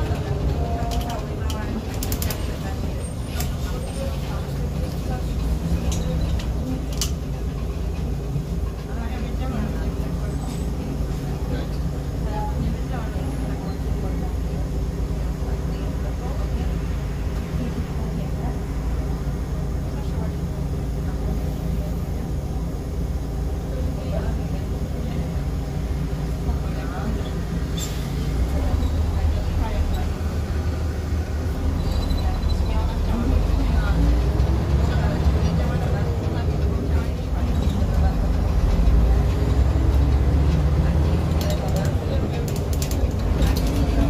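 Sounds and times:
bus engine drone: 0.0 - 44.0
road noise: 0.0 - 44.0.

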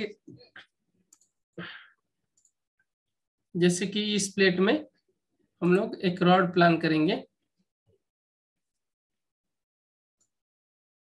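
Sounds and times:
computer mouse clicks: 1.0 - 1.4, 2.3 - 2.6
person speaking: 5.6 - 7.4.

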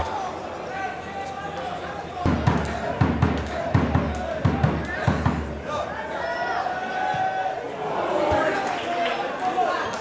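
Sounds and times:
players shouting: 0.0 - 10.0.

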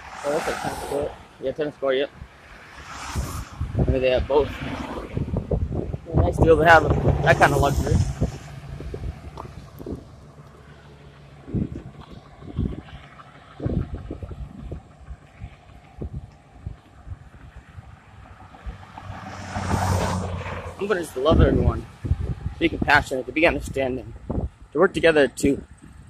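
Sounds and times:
truck passing close by: 0.0 - 1.4, 2.4 - 16.7, 17.8 - 22.5
vehicle passing: 0.0 - 22.9
road traffic noise: 0.0 - 26.0
wind buffeting microphone: 2.1 - 26.0.

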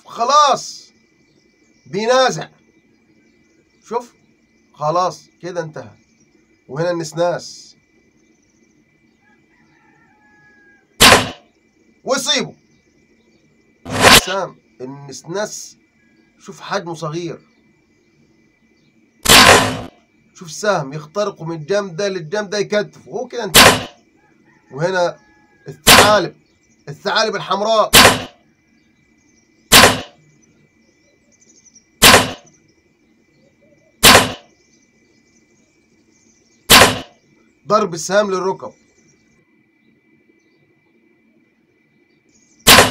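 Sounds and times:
arrow striking smack: 11.0 - 11.4, 13.9 - 14.4, 19.2 - 19.9, 23.6 - 24.0, 25.9 - 26.2, 28.0 - 28.4, 29.7 - 30.2, 32.0 - 32.5, 34.0 - 34.5, 36.7 - 37.2, 42.7 - 42.9.

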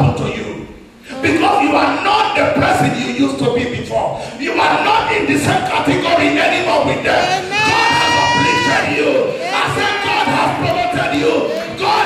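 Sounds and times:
congregation voices: 0.0 - 12.0
preacher shouting into microphone: 7.0 - 12.0.

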